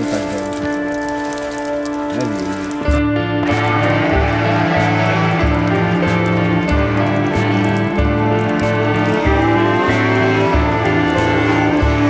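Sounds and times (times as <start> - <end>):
rain pattering: 0.0 - 12.0.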